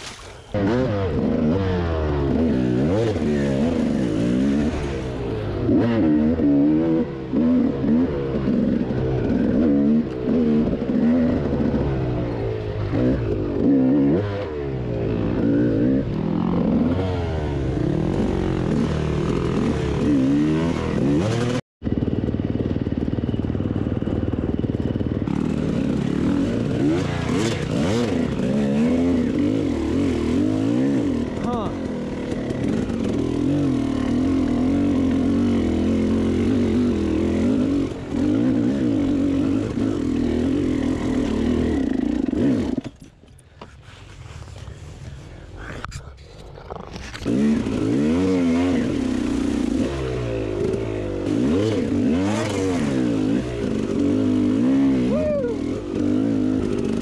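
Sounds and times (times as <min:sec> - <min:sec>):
two-stroke motorbike engine revving: 0:00.0 - 0:43.1, 0:47.2 - 0:57.0.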